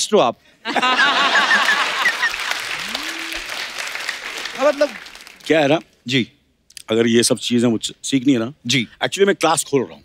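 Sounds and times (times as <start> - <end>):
audience applauding: 0.9 - 5.8.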